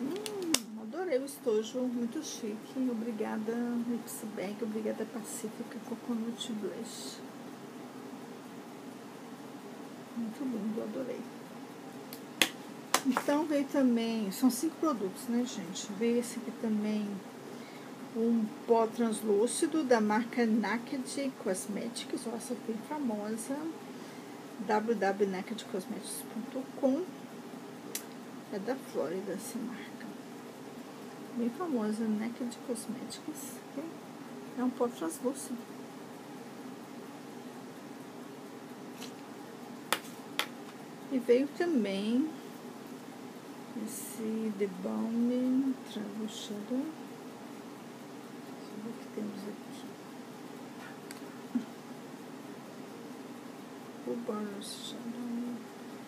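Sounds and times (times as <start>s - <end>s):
low room hum: 0.0s - 56.0s.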